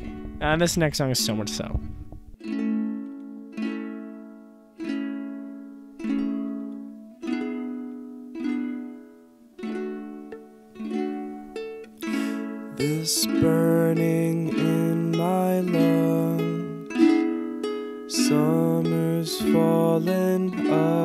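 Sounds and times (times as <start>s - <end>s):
strummed acoustic guitar chords: 0.0s - 21.0s
person singing: 11.9s - 17.5s, 18.1s - 21.0s.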